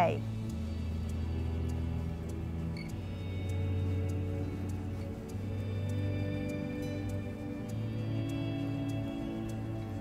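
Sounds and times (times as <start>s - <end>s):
light ticking beat: 0.0s - 10.0s.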